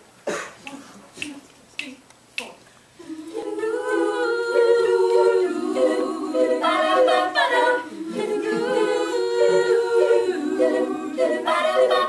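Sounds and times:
finger snaps keeping a beat: 0.6s - 2.6s.

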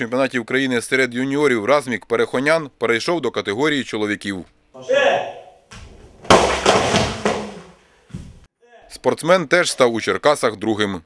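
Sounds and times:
board breaking with a loud crack: 6.2s - 7.7s.

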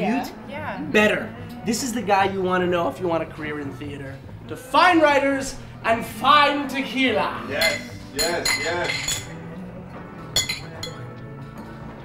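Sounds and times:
background music: 0.0s - 12.0s
drinking glasses clinking: 7.6s - 9.5s, 10.3s - 11.2s.

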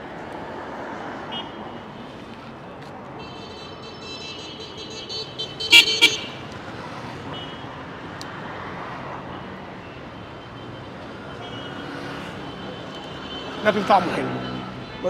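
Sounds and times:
street traffic: 0.0s - 15.0s
vehicle horn honking: 3.2s - 6.4s.

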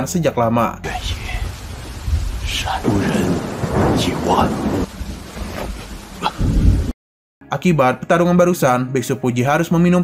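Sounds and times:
steady rain: 0.8s - 7.0s
thunder rumbling: 0.9s - 6.9s.

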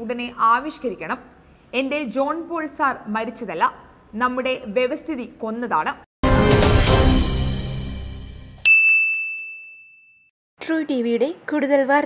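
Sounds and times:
bright ding: 8.6s - 10.3s.

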